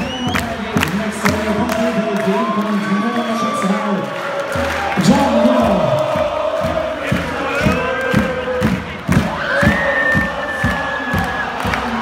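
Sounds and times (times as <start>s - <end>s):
drum beats: 0.0s - 2.8s, 4.0s - 12.0s
crowd chanting and cheering: 0.0s - 12.0s.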